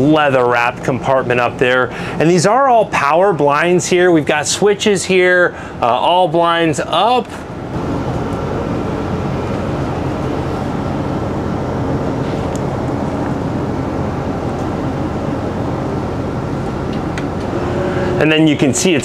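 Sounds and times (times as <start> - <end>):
electric blind motors humming: 7.8 - 19.0.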